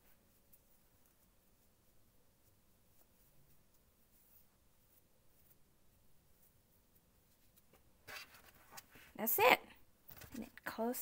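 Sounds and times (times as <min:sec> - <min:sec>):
faint rustle: 0:00.0 - 0:09.2.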